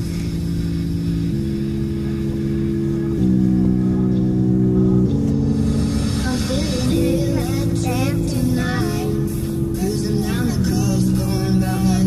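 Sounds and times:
car rumble on road: 0.0s - 12.0s
pop music on car stereo: 0.0s - 12.0s.

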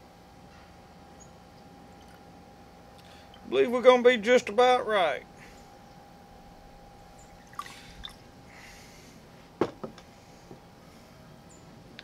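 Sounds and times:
wet squishes and drips: 7.4s - 8.2s.

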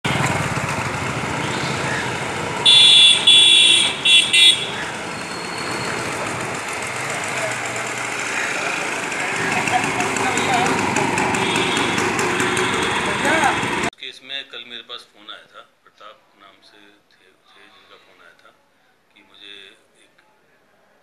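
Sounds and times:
street traffic: 0.0s - 13.9s
vehicle horn honking: 2.6s - 6.2s, 10.0s - 13.9s.

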